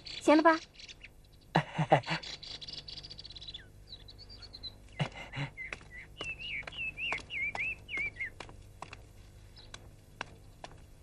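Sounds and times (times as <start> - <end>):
faint bird chirps: 0.0 - 8.5.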